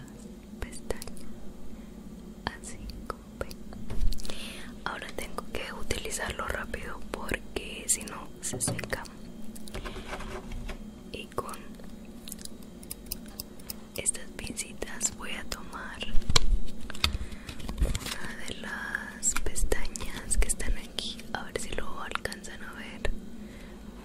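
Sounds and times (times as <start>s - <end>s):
soft whispering: 0.0s - 1.4s, 2.4s - 9.2s, 11.1s - 11.8s, 14.0s - 16.2s, 18.0s - 23.1s.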